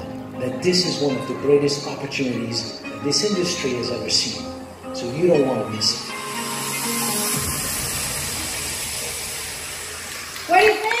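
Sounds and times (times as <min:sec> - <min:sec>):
video music: 0:00.0 - 0:11.0
audience applause: 0:09.0 - 0:11.0.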